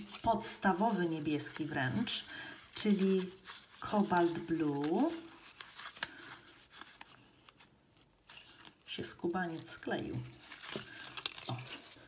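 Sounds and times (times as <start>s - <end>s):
paper cards rustling and clicking: 2.7s - 12.0s.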